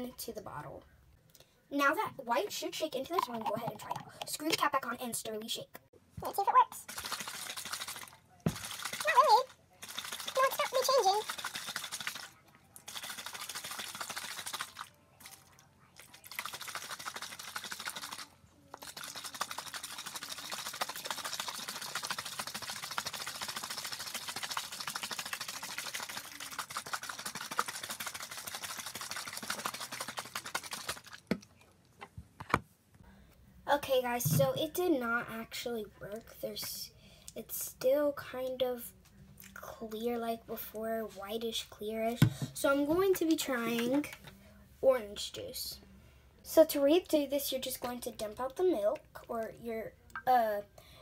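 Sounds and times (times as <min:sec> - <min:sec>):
child's voice: 0:01.7 - 0:06.8, 0:09.0 - 0:09.5, 0:10.3 - 0:11.3, 0:33.7 - 0:39.0, 0:39.6 - 0:44.2, 0:44.8 - 0:45.8, 0:46.5 - 0:50.8
water sloshing in plastic bottle: 0:06.9 - 0:15.4.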